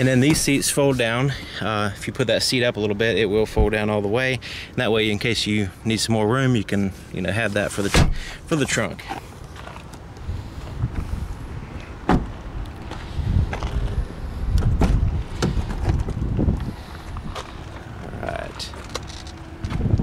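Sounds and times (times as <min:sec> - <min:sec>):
wind rumble on microphone: 0:10.1 - 0:18.7, 0:19.4 - 0:20.0
microphone handling noise: 0:10.2 - 0:20.0.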